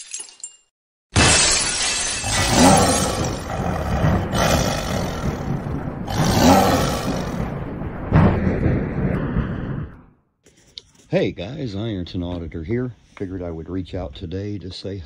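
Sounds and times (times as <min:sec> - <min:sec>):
loud crashing and shattering: 0:01.1 - 0:09.2
big cat roaring: 0:02.3 - 0:07.6.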